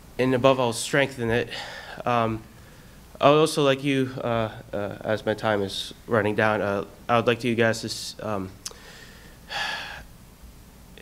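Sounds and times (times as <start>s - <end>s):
man breathing in sharply: 1.5s - 3.0s, 8.7s - 10.1s.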